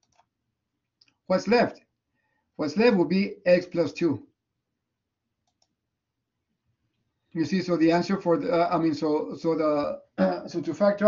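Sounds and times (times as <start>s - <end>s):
faint quick clicks: 5.4s - 5.8s.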